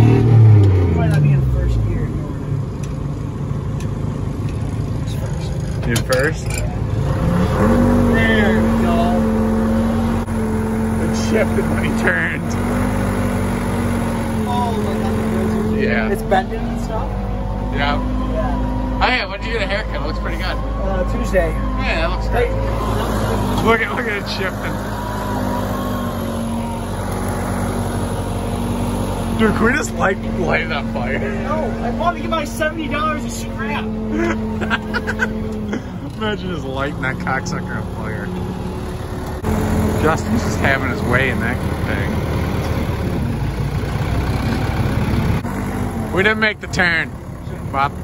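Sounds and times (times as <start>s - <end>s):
diesel engine running under load: 0.0s - 48.0s.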